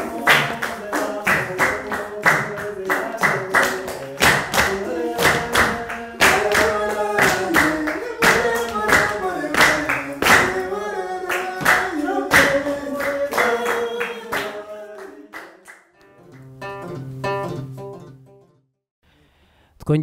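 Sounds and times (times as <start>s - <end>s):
people singing: 0.0s - 15.8s
handclaps keeping the beat: 0.0s - 17.5s.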